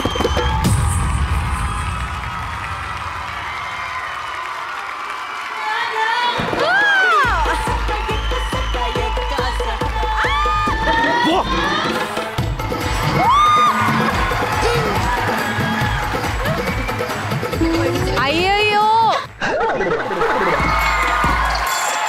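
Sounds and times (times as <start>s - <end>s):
audience cheering and whooping: 0.0s - 12.0s, 12.6s - 22.0s
dance music with heavy beat: 7.2s - 19.2s, 20.4s - 22.0s.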